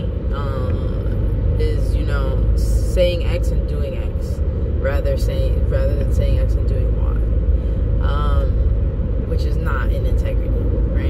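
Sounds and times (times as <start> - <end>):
car interior road and engine noise: 0.0 - 11.0.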